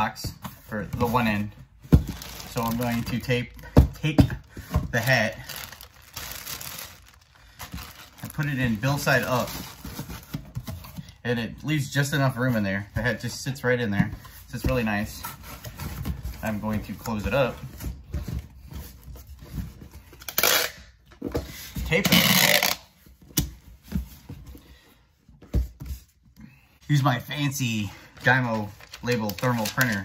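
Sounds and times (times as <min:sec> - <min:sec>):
plastic bag crinkling: 0:02.0 - 0:03.1, 0:04.9 - 0:09.8.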